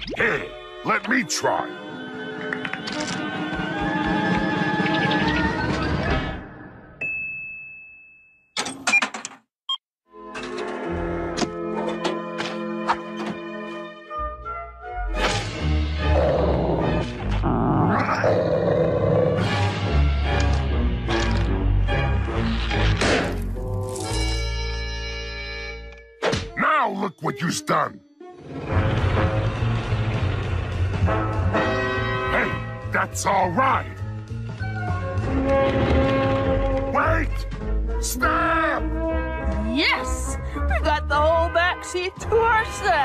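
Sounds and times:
cartoon score music: 0:26.5 - 0:34.0.

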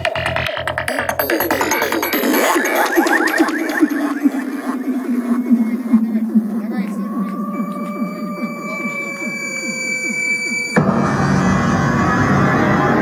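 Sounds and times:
psychedelic trance music: 0:00.0 - 0:13.0
sweeping synth effects: 0:01.2 - 0:13.0
falling held synth tones: 0:01.7 - 0:13.0.

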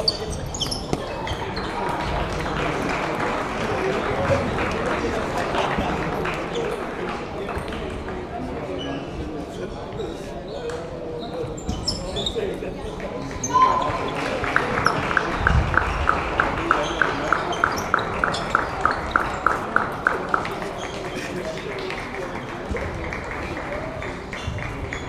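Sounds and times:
chatter in sports hall: 0:00.0 - 0:25.0.

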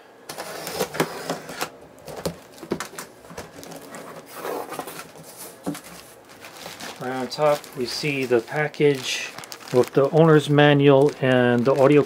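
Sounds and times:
plastic bag crinkling: 0:02.0 - 0:12.0.

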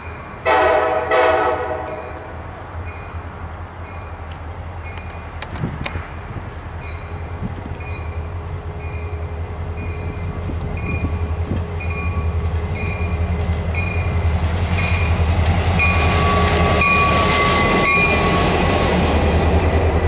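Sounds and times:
diesel locomotive engine drone: 0:00.0 - 0:20.0
rush of train passing: 0:00.0 - 0:20.0
locomotive bell ringing: 0:01.7 - 0:03.2, 0:03.8 - 0:18.7.

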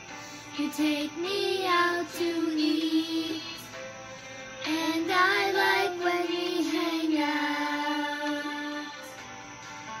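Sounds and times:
child singing slow song: 0:00.5 - 0:03.8, 0:04.6 - 0:09.2.

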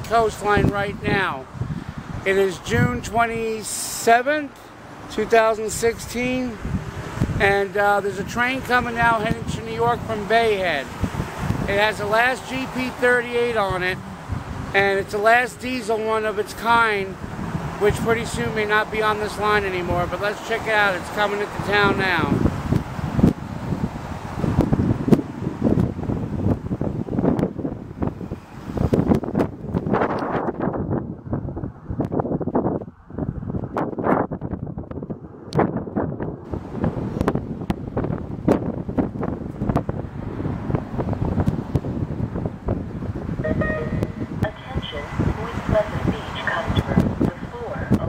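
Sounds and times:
wind buffeting microphone: 0:00.0 - 0:04.1, 0:04.7 - 0:48.0
indistinct voices: 0:43.4 - 0:48.0.

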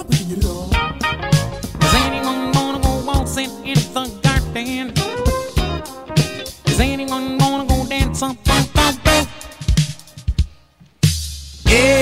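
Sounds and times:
guitar song with drum beat: 0:00.0 - 0:12.0.

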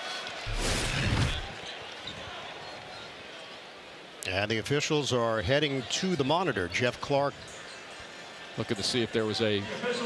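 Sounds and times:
faint arena ambience hum: 0:00.0 - 0:10.0
graphic whoosh: 0:00.5 - 0:01.5.

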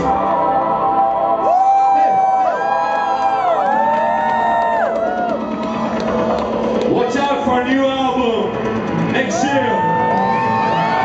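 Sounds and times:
crowd cheering: 0:00.0 - 0:11.0
synthpop song over pa: 0:00.0 - 0:11.0.

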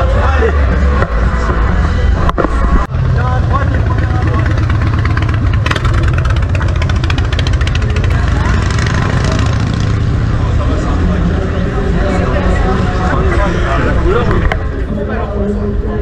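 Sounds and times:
people chattering: 0:00.0 - 0:16.0
sharp exhaust pulses: 0:02.9 - 0:10.2
motorcycle engine passing slowly: 0:02.9 - 0:10.7.

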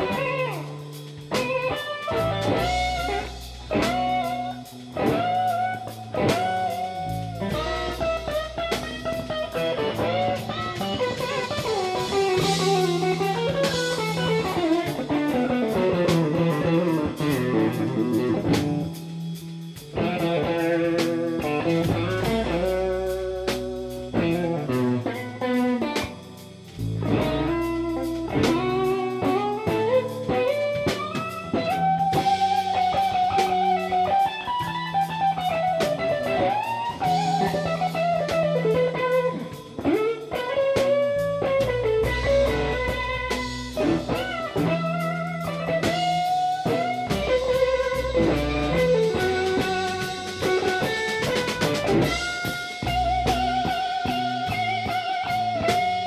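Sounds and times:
bass notes: 0:00.0 - 0:56.0
drum kit: 0:00.0 - 0:56.0
electric guitar lead line: 0:00.0 - 0:56.0.

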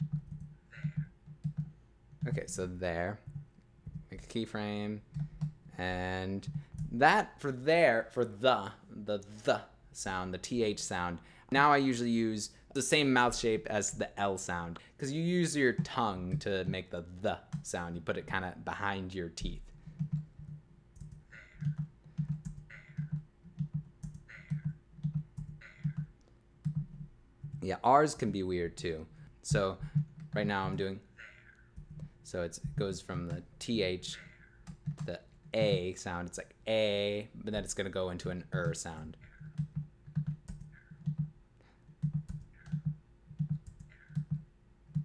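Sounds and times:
keyboard keys tapping: 0:00.0 - 0:04.4, 0:19.4 - 0:27.8, 0:34.1 - 0:35.9, 0:38.2 - 0:45.0
faint steady hum: 0:00.0 - 0:45.0
clipped recorded voice fragments: 0:32.3 - 0:41.2.

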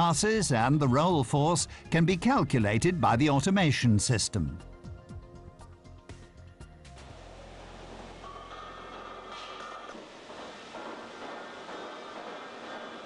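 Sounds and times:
low hum: 0:06.9 - 0:10.0
rolling mill machinery noise: 0:06.9 - 0:13.0.

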